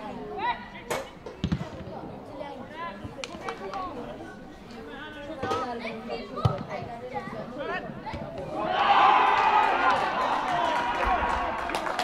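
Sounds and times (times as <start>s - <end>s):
players shouting: 8.4s - 12.0s.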